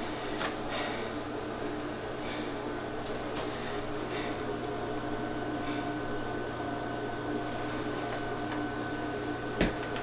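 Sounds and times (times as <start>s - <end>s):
constant low hum: 0.0s - 10.0s.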